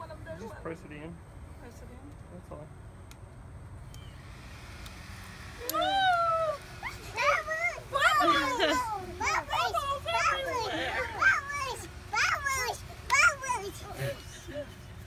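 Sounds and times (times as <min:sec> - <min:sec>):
children squealing: 0:05.6 - 0:12.8.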